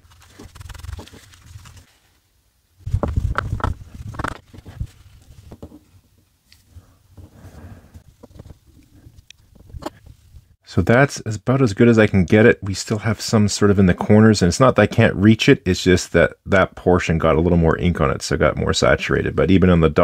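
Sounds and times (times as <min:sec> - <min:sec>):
swab rubbing on plastic: 0:00.0 - 0:02.0.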